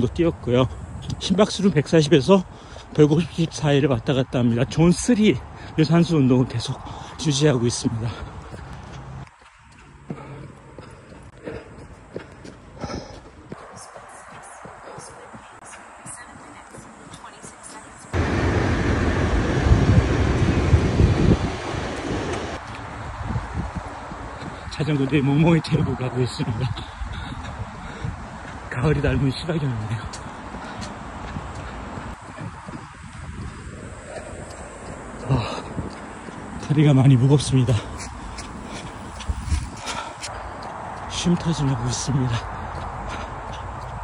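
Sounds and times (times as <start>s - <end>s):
wind buffeting microphone: 0.0s - 44.0s
footsteps on pavement: 0.8s - 19.3s, 20.0s - 44.0s.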